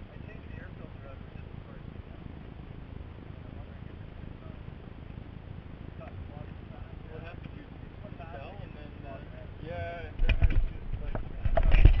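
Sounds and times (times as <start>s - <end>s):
microphone handling bumps: 10.2s - 12.0s.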